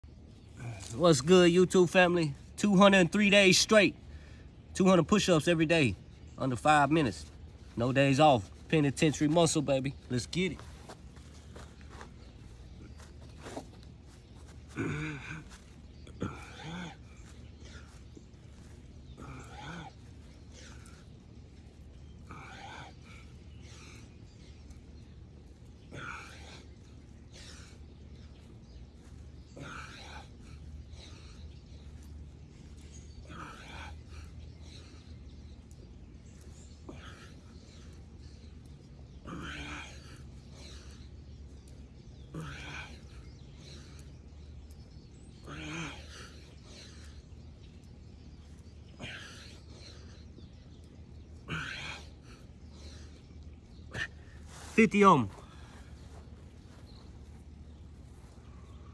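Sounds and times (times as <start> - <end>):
low background rumble: 5.9 - 58.9
sneakers scuffing on grass: 10.4 - 14.8, 54.4 - 58.6.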